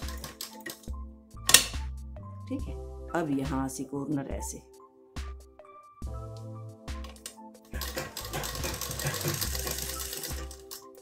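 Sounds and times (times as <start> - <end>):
sewing machine running: 7.8 - 10.8.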